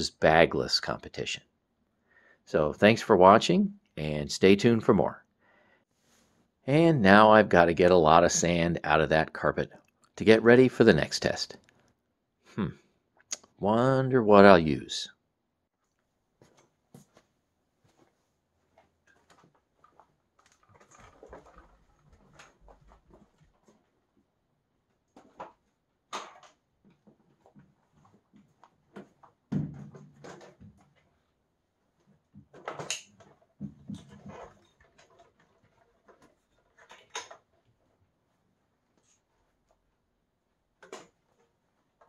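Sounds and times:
footsteps: 16.4 - 23.9
vacuum cleaners being handled: 16.4 - 39.9, 40.7 - 42.0.

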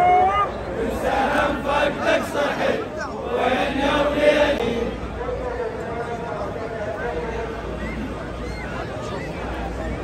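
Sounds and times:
crowd of men chanting: 0.7 - 5.0.

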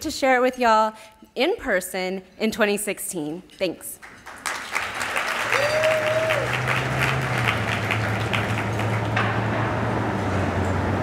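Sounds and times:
audience applauding: 4.0 - 9.4.

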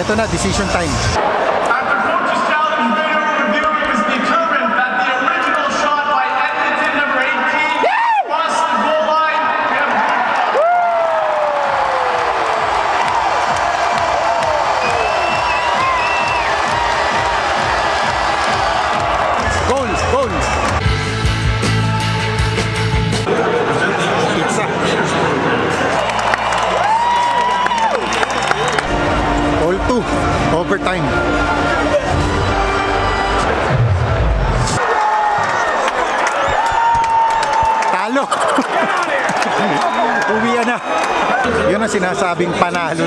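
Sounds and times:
crowd reacting: 1.2 - 3.5, 7.7 - 20.9, 23.3 - 30.4, 31.2 - 42.2
arena music: 11.8 - 23.8, 25.1 - 34.8
rock music with heavy beat: 17.1 - 23.3.

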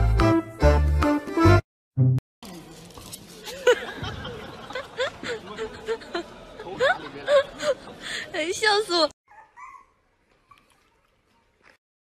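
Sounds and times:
dog whining and yowling: 9.3 - 10.8.

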